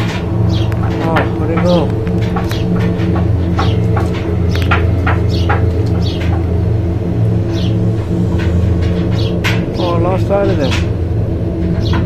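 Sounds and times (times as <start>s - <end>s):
low drone of held tones: 0.0s - 12.0s
high bird chirps: 3.5s - 6.4s, 7.5s - 7.9s.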